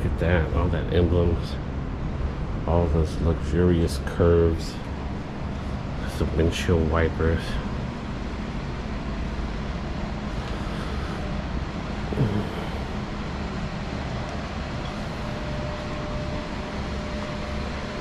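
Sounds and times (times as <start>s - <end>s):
air conditioning hum: 0.0s - 18.0s.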